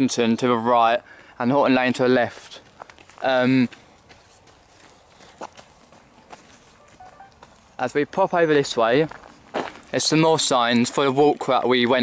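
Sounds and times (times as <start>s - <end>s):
footsteps on outdoor path: 1.6s - 12.0s.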